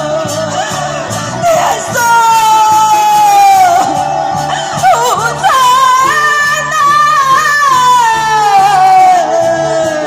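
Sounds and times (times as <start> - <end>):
opera singing through microphone: 0.0 - 10.0.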